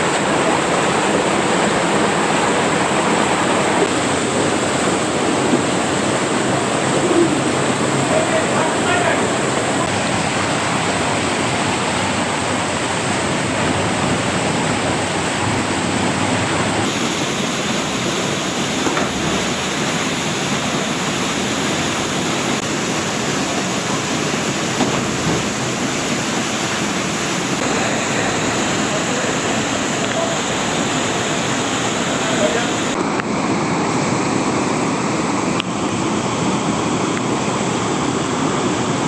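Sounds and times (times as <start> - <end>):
waterfall and stream rushing: 0.0 - 39.0.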